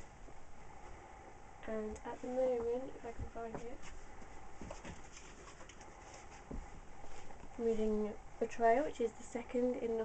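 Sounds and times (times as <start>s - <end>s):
books rustling on shelf: 2.2s - 7.9s.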